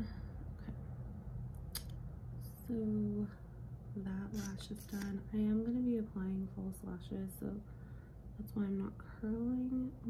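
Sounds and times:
steady low hum: 0:00.0 - 0:10.0
person speaking: 0:04.0 - 0:05.6.

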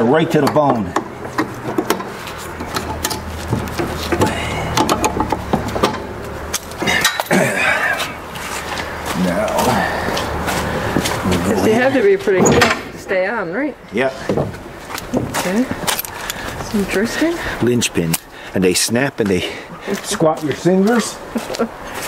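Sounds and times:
low engine hum: 0:00.8 - 0:12.4.

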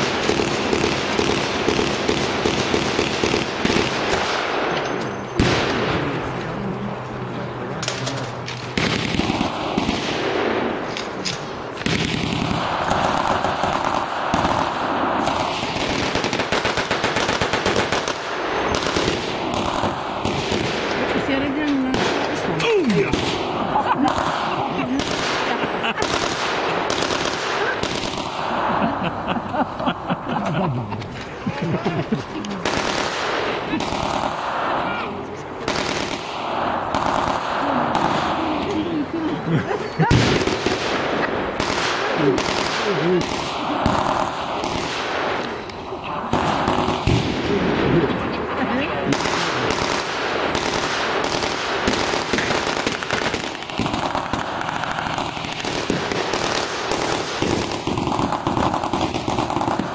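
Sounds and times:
automatic gunfire: 0:00.0 - 0:04.8, 0:07.8 - 0:28.7, 0:32.6 - 0:35.0, 0:35.6 - 0:38.8, 0:40.1 - 0:45.7, 0:46.3 - 0:59.9
single rifle shots: 0:00.0 - 0:06.3, 0:07.8 - 0:28.6, 0:32.6 - 0:38.8, 0:40.1 - 0:45.7, 0:46.3 - 0:59.9
blank gunshots: 0:00.0 - 0:06.6, 0:07.8 - 0:29.2, 0:32.6 - 0:39.4, 0:40.0 - 0:59.9
spectators' voices: 0:00.0 - 0:59.9.

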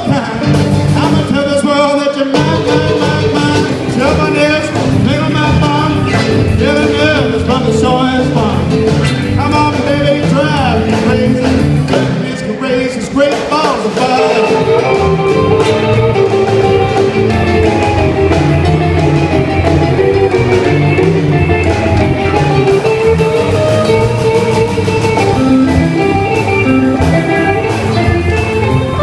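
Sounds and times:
drum kit: 0:00.0 - 0:29.0
electric guitar melody: 0:00.0 - 0:29.0
upright double bass: 0:00.0 - 0:29.0.

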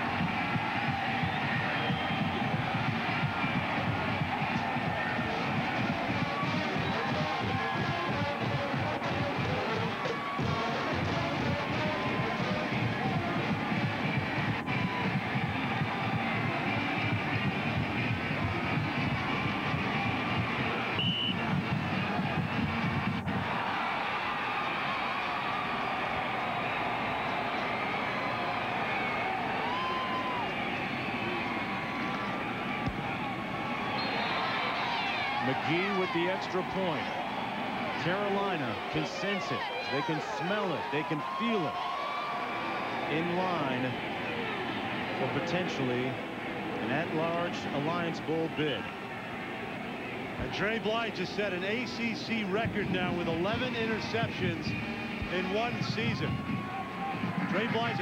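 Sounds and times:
stadium crowd noise: 0:00.0 - 0:58.0.

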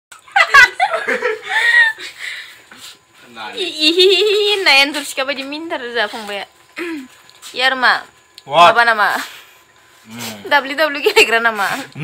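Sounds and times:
woman laughing: 0:00.4 - 0:02.1, 0:03.8 - 0:04.6.

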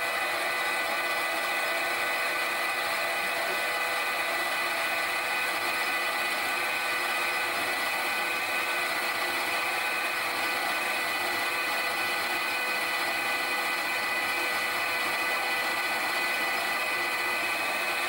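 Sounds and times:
metal lathe drilling whine: 0:00.0 - 0:18.0.

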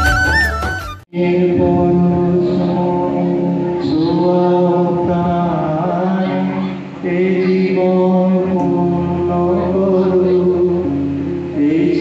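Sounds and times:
acoustic guitar: 0:00.0 - 0:12.0
man singing into microphone: 0:01.1 - 0:12.0.

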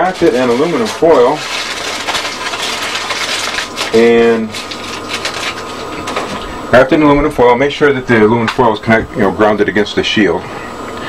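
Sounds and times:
aluminum foil crinkling: 0:00.0 - 0:06.6.

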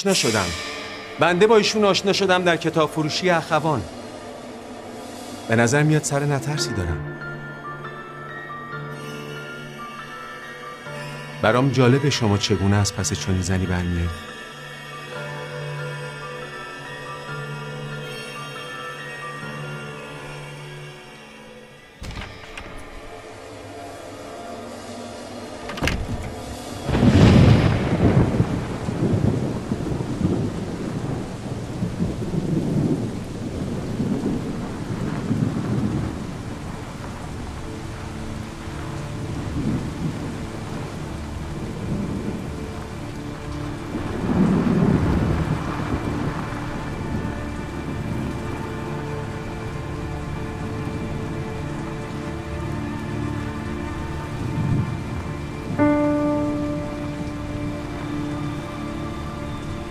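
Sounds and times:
sustained musical notes: 0:00.0 - 0:14.2, 0:21.4 - 0:59.9
steady rain: 0:00.0 - 0:59.9
low rolls of thunder: 0:22.1 - 0:52.8, 0:53.9 - 0:59.9.

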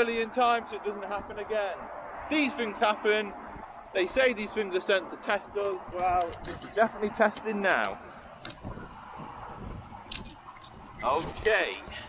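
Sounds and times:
motorway traffic: 0:00.0 - 0:12.0
wind rumbling on microphone: 0:00.0 - 0:12.0.

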